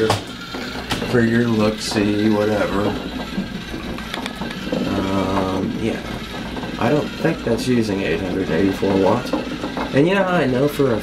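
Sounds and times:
electric motor humming: 0.0s - 11.0s.

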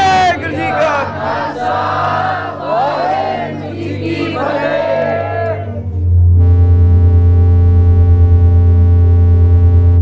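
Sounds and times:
crowd shouting a chant: 0.0s - 5.8s
loud held drone chord: 0.0s - 10.0s.

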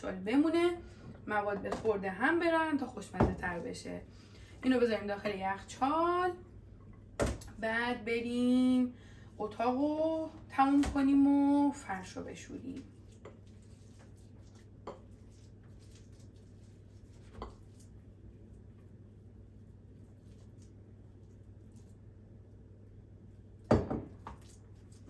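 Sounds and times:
glass bowl set down on counter: 23.7s - 24.4s.

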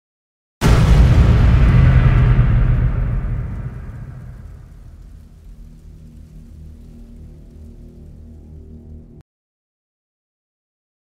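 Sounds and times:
deep impact boom: 0.6s - 9.2s
low music drone: 3.7s - 9.2s.

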